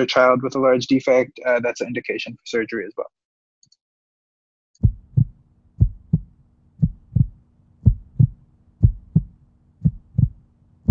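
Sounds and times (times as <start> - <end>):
faint steady hum: 4.8 - 10.9
heartbeat thumps: 4.8 - 10.9.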